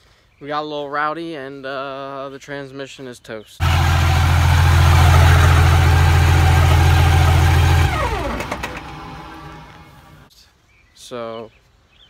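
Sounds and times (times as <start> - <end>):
pickup truck engine revving: 3.6 - 10.2
turbo whine gliding down: 3.6 - 10.2.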